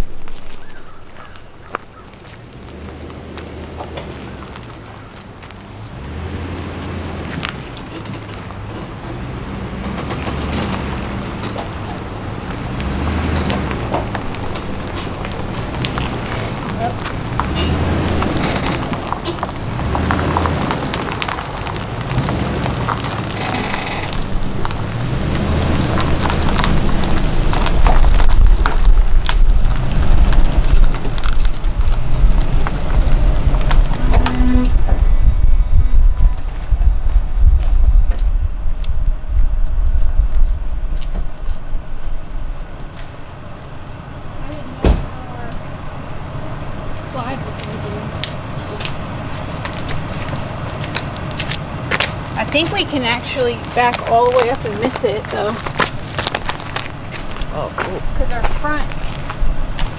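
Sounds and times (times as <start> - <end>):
tyres crunching on gravel: 0.0 - 59.9
vehicle engine rumble: 0.0 - 59.9.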